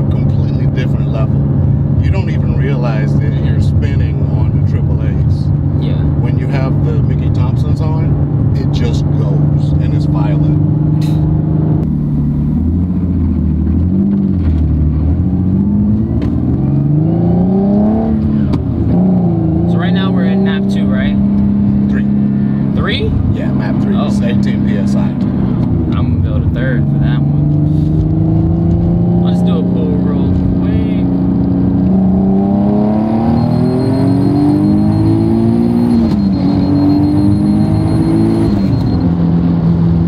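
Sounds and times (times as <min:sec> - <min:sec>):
car engine from inside cabin: 0:00.0 - 0:40.0.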